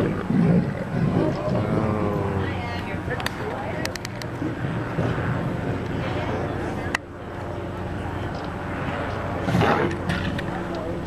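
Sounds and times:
low engine drone: 0.0s - 11.0s.

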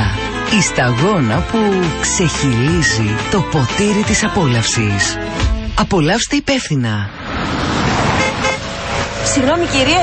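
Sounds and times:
street traffic: 6.9s - 10.0s
short car horn toot: 8.2s - 8.7s.

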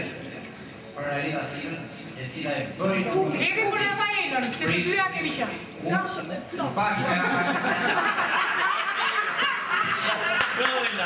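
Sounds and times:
women laughing: 7.0s - 10.7s.

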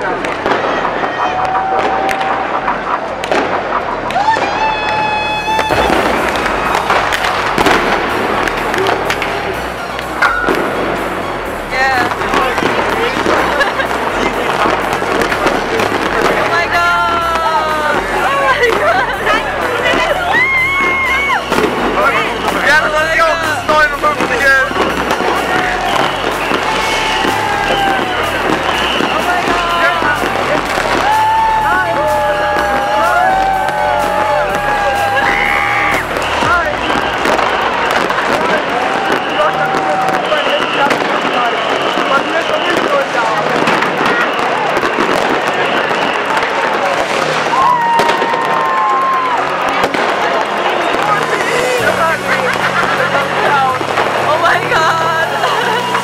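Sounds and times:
background music: 0.0s - 56.0s
crowd voices: 0.0s - 56.0s
fireworks popping and banging: 0.0s - 56.0s.

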